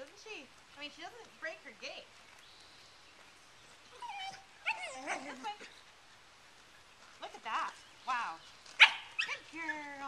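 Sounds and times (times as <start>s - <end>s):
puppy yipping and whining: 3.9s - 5.5s.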